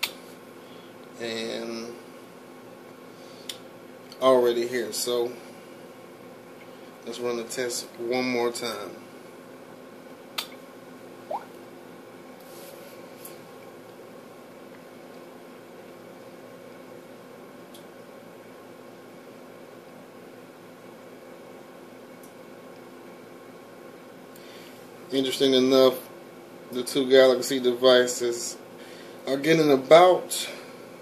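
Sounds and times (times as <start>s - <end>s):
low room hum: 0.0s - 31.0s.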